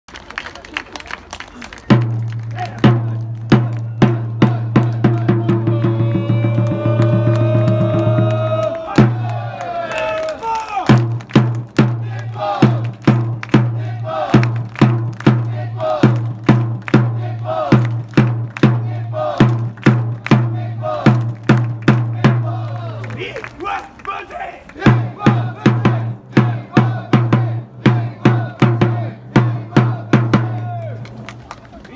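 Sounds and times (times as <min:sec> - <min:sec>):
drum beating: 0:01.8 - 0:23.8, 0:24.7 - 0:31.1
crowd chanting: 0:04.0 - 0:10.9, 0:11.8 - 0:31.0.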